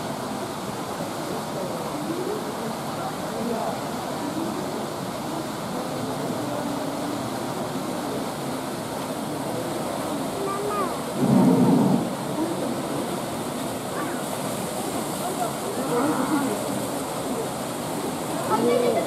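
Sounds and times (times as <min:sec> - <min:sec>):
water rushing: 0:00.0 - 0:19.0
chatter of voices: 0:01.2 - 0:19.0
loud dull burst: 0:11.2 - 0:12.3.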